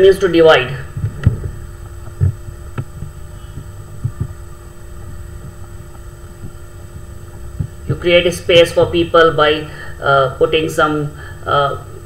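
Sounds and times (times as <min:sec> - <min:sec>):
low electrical hum: 0:00.0 - 0:12.0
soft low knocks and clicks: 0:01.0 - 0:08.0.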